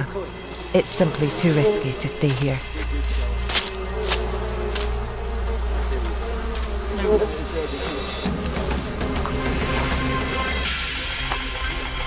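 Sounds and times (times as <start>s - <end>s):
bee swarm buzzing: 0.0s - 10.7s.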